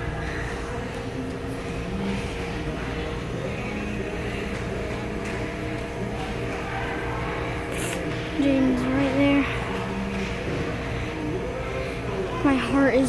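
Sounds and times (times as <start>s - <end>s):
continuous low hum: 0.0s - 13.0s
faint distant sounds: 0.0s - 13.0s.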